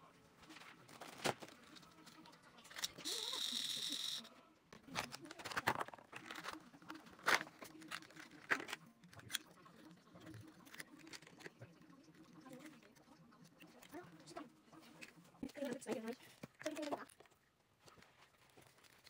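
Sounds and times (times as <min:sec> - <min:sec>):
plastic clicks and crinkles: 0:04.7 - 0:14.0, 0:14.8 - 0:19.0.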